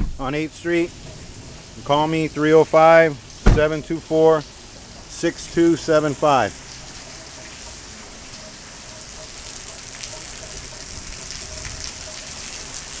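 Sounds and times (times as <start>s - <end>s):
steady rain falling: 0.0s - 13.0s.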